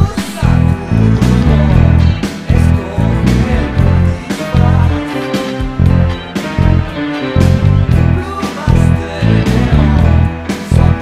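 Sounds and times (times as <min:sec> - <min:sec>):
electric bass playing low notes: 0:00.0 - 0:11.0
keyboards: 0:00.0 - 0:11.0.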